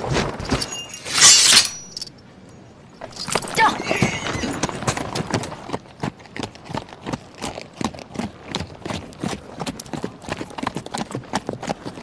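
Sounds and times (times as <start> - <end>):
harness jingling: 0.5 - 2.2
horse hooves clopping: 3.1 - 12.0.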